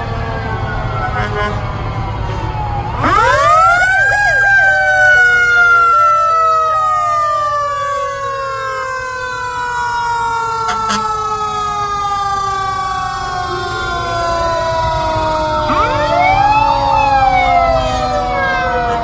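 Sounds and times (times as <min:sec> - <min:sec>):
fire truck sirens: 0:00.0 - 0:19.0
heavy truck engines rumbling: 0:00.0 - 0:19.0.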